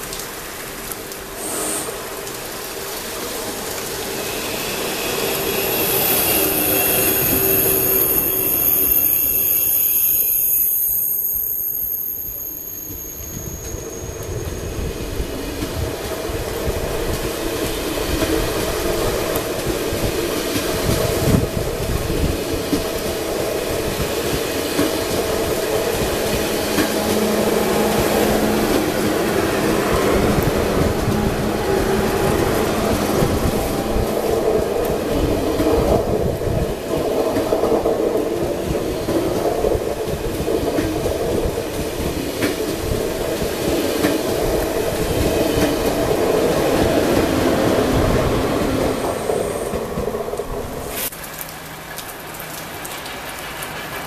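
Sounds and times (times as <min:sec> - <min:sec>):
high-speed train passing: 0:00.0 - 0:51.4, 0:52.5 - 0:54.0
train wheels rolling on rails: 0:00.0 - 0:51.7, 0:52.3 - 0:54.0.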